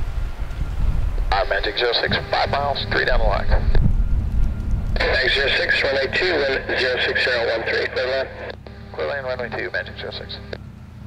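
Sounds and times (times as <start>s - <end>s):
voice over radio: 1.3s - 3.8s, 5.0s - 10.6s.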